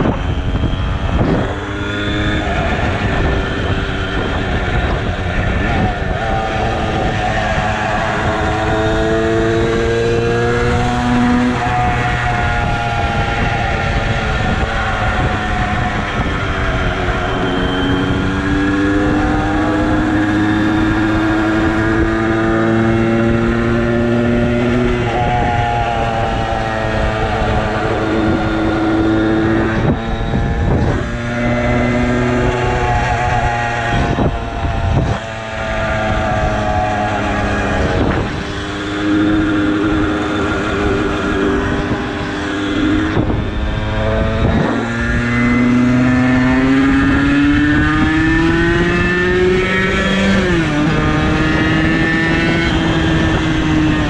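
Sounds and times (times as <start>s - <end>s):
moped engine revving: 0.0s - 54.0s.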